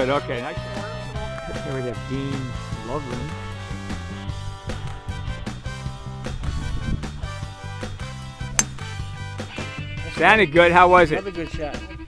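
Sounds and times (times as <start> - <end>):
golf club striking ball: 8.6 - 9.1.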